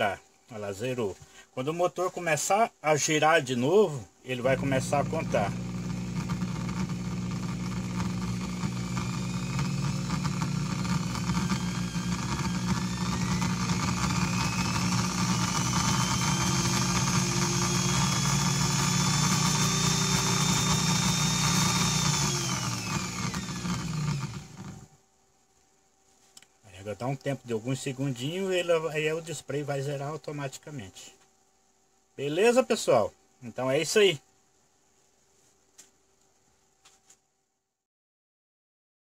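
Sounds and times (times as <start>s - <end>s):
electric drill motor whine: 4.4s - 25.0s.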